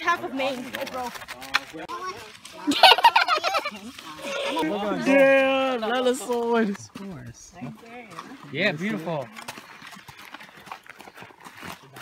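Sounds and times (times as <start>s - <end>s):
hooves clip-clopping on dirt: 0.0s - 12.0s.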